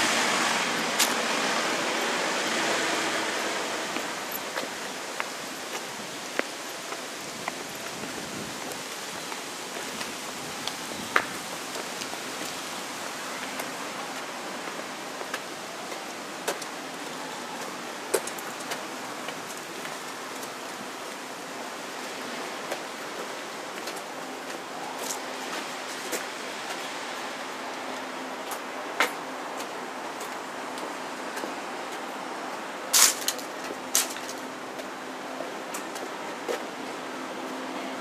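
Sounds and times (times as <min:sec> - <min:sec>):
steady street hiss: 0:00.0 - 0:38.0.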